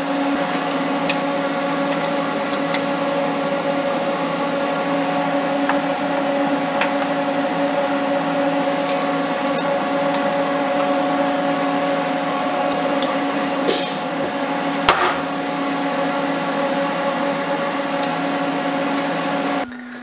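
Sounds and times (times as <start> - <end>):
shop machinery motor humming: 0.0 - 20.0
burst of hiss: 13.6 - 14.3.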